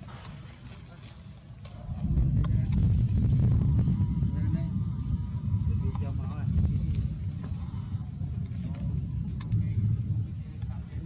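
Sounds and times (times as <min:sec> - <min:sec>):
low rumbling on microphone: 0:01.4 - 0:11.0
faint sharp clicks: 0:09.4 - 0:09.8.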